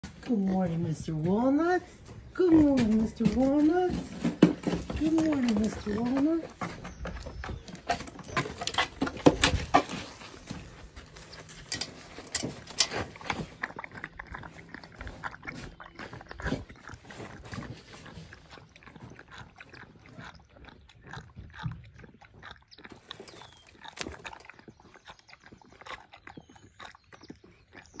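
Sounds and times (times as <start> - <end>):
pig chewing and slurping: 0.0 - 28.0.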